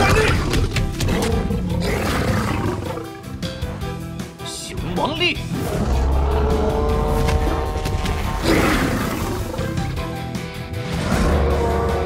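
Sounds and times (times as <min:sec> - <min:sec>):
dramatic music: 0:00.0 - 0:12.0
animal roar: 0:01.0 - 0:03.2, 0:05.5 - 0:09.8, 0:10.8 - 0:12.0.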